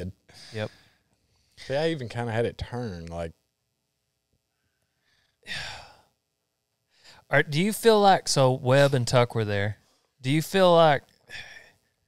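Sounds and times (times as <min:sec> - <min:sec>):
man sighing: 0:05.4 - 0:06.1, 0:11.3 - 0:11.7.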